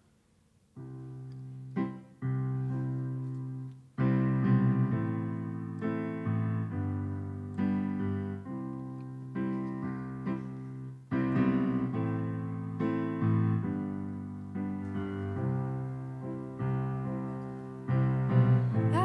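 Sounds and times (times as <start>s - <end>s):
digital piano slow chords: 0.0s - 19.0s.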